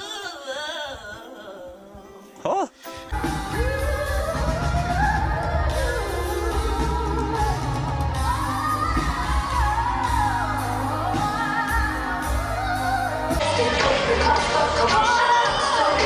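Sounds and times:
woman singing with vocal runs: 0:00.0 - 0:02.4, 0:03.1 - 0:16.0
band playing: 0:02.1 - 0:16.0.

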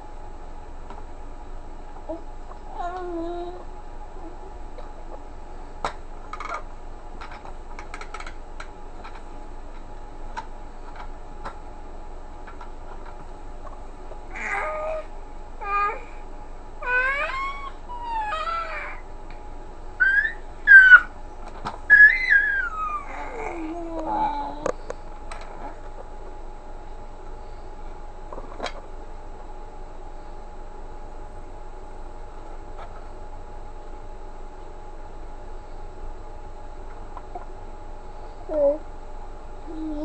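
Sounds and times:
baby cooing and squealing: 0:14.3 - 0:16.2, 0:16.8 - 0:19.0, 0:20.0 - 0:21.1, 0:21.9 - 0:24.6.

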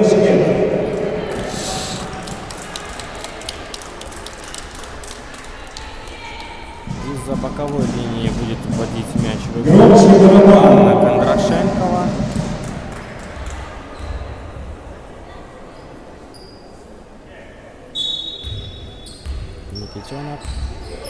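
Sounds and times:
loud steady pitched tone: 0:09.7 - 0:12.6
basketball bouncing: 0:11.7 - 0:14.3, 0:18.4 - 0:19.6, 0:20.4 - 0:20.8.

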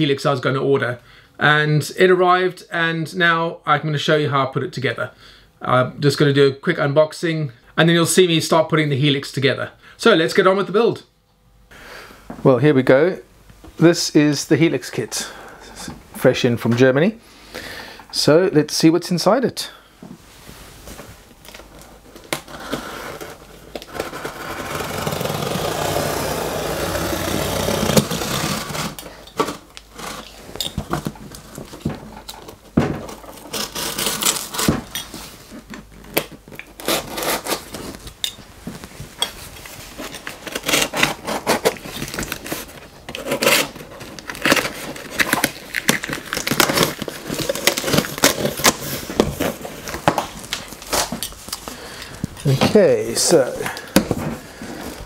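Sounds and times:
cardboard crackling and knocking: 0:21.7 - 0:34.9, 0:40.0 - 0:51.2
knife cutting cardboard: 0:22.3 - 0:30.3, 0:33.1 - 0:34.9, 0:36.8 - 0:37.9, 0:40.1 - 0:45.4.

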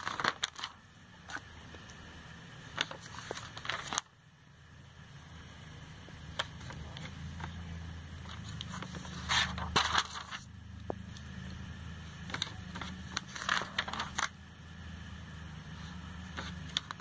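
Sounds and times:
paper page rustling: 0:00.0 - 0:01.5, 0:02.7 - 0:04.1, 0:06.3 - 0:07.6, 0:08.2 - 0:10.5, 0:12.2 - 0:14.4, 0:15.8 - 0:17.0
low steady hum: 0:00.0 - 0:17.0.

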